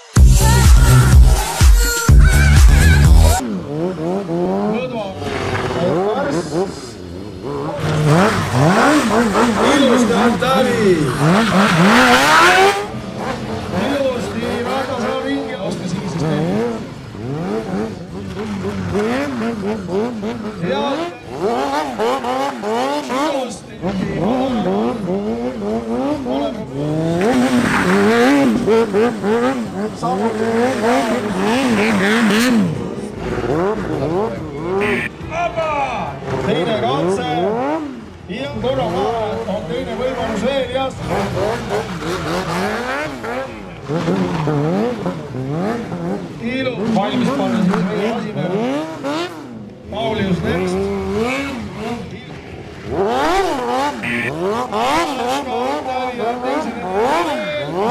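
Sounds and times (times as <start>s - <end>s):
motorcycle engine revving: 0.0s - 35.3s, 35.9s - 57.9s.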